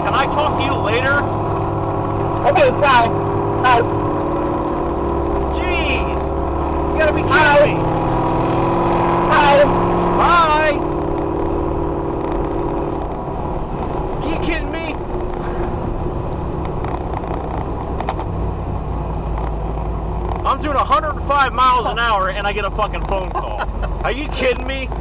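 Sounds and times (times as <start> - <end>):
car engine at high speed: 0.0 - 25.0
tyre road noise: 0.0 - 25.0.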